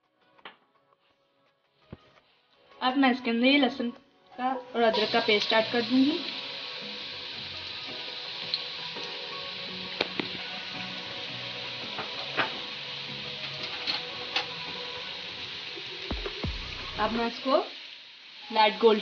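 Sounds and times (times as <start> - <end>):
paste sizzling in hot oil: 4.8 - 19.0.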